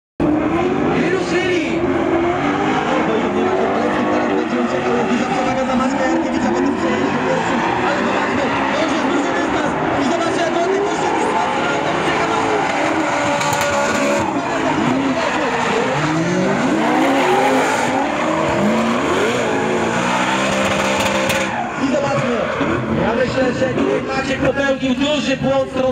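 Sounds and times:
car engines revving hard: 0:00.2 - 0:25.9
tyres squealing: 0:04.6 - 0:24.1.

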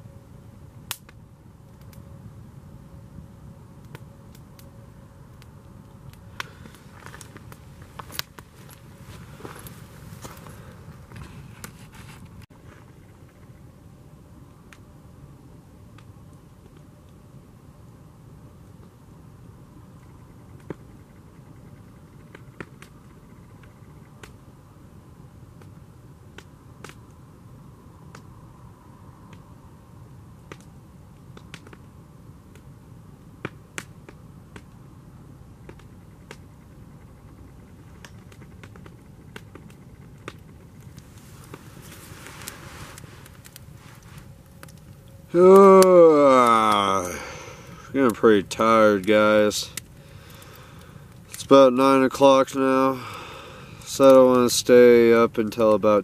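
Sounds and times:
campfire crackling: 0:00.0 - 0:56.0.

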